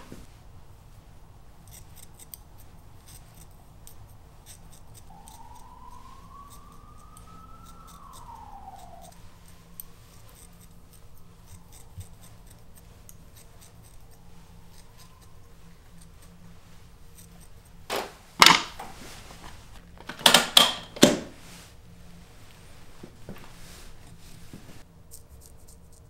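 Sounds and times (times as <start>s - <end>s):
scissors snipping hair: 1.6s - 5.7s, 7.0s - 9.2s, 9.8s - 16.3s
faint tone: 5.0s - 11.9s.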